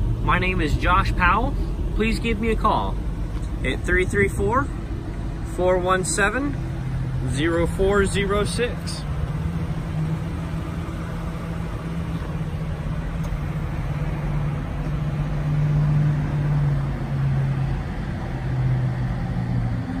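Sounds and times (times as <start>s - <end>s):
car engine running: 0.0s - 20.0s.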